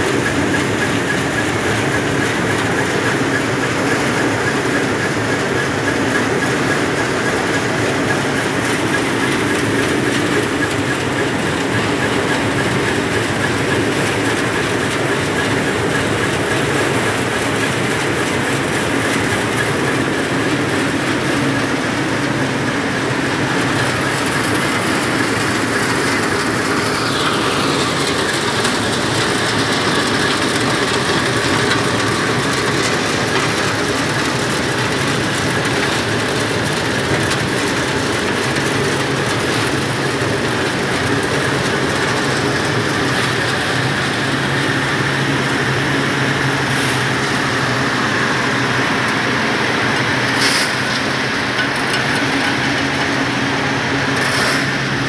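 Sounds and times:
grinding machine hum and rattle: 0:00.0 - 0:55.0.

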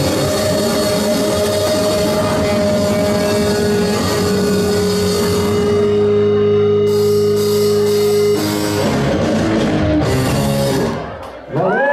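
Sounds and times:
cymbals: 0:00.0 - 0:09.3
distorted electric guitars: 0:00.0 - 0:11.4.

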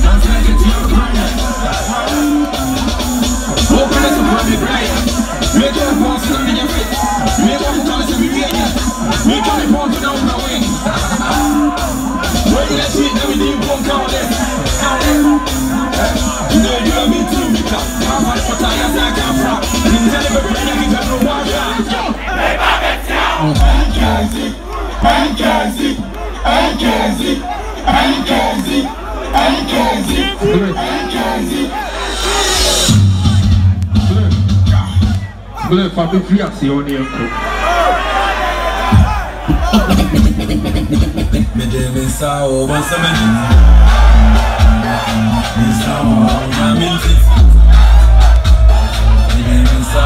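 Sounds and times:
loud live music with heavy bass: 0:00.0 - 0:36.6, 0:38.8 - 0:50.0
concert crowd shouting along: 0:00.0 - 0:50.0.

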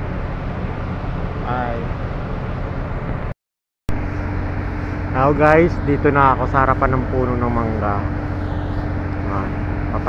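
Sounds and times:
motor rumbling: 0:00.0 - 0:03.3, 0:03.9 - 0:10.0.

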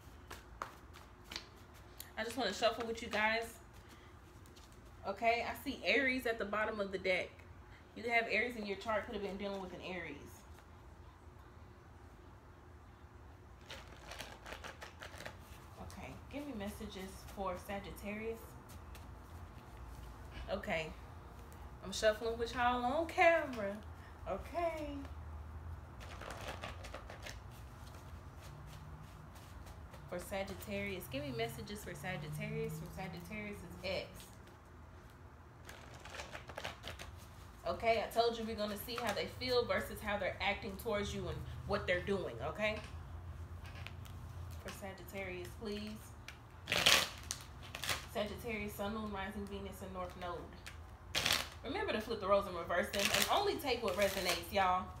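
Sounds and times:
cards being shuffled: 0:13.6 - 0:15.8, 0:25.9 - 0:30.1, 0:35.6 - 0:37.4.

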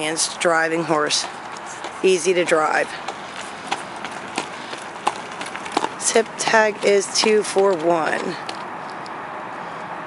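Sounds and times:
horse hoofbeats on gravel: 0:00.0 - 0:08.7.

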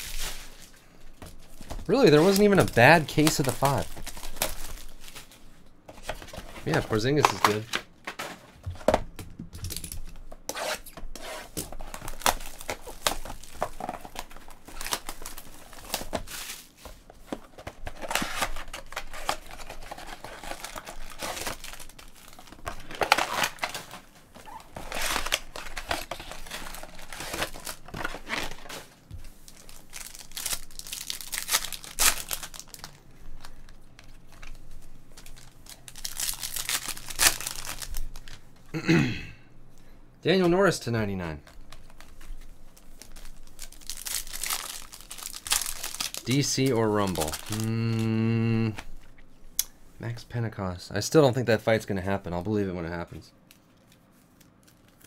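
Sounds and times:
plastic wrapping tearing and crinkling: 0:00.0 - 0:05.4, 0:10.6 - 0:16.8, 0:17.5 - 0:38.4, 0:41.4 - 0:49.2, 0:53.5 - 0:55.0.

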